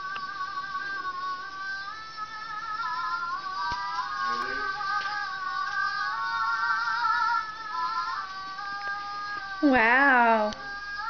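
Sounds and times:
electronic toy melody: 0:00.0 - 0:11.0.

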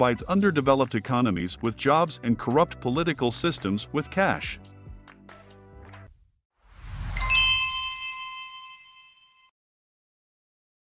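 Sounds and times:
high ringing ding: 0:07.2 - 0:09.5.

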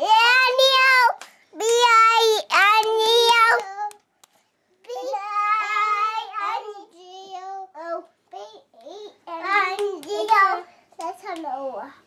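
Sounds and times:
child singing: 0:04.9 - 0:12.0.

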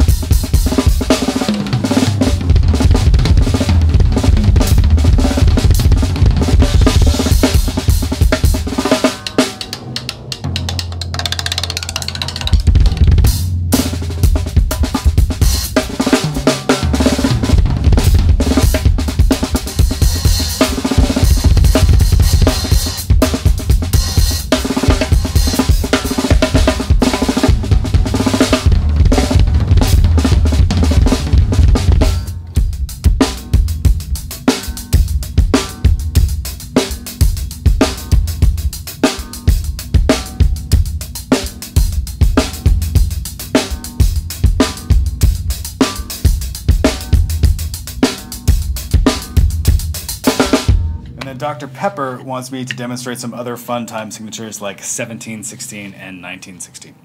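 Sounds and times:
drum solo: 0:00.0 - 0:54.2
held low drum boom: 0:01.8 - 0:08.9, 0:16.8 - 0:34.3, 0:48.6 - 0:52.0.

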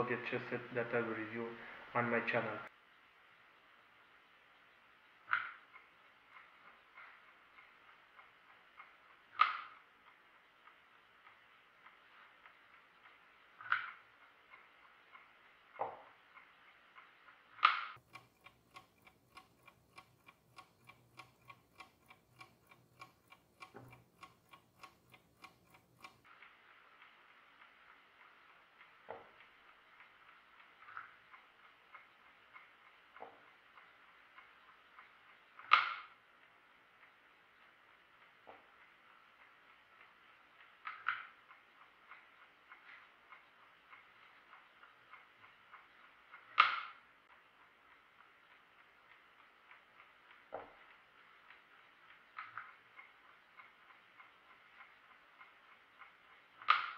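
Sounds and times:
faint hiss: 0:00.0 - 0:08.6
chess clock ticking: 0:05.2 - 0:26.4, 0:27.5 - 0:56.9
clicks: 0:05.3 - 0:26.3
sharp click: 0:46.5 - 0:47.0.

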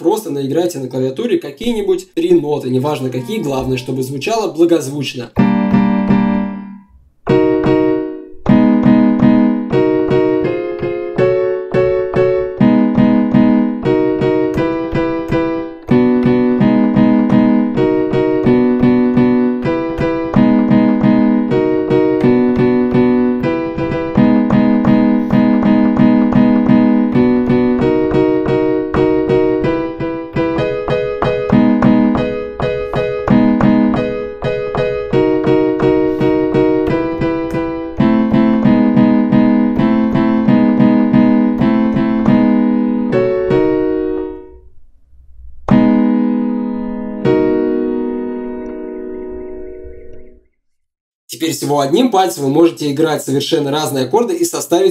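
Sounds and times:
piano chords: 0:01.8 - 0:50.6.

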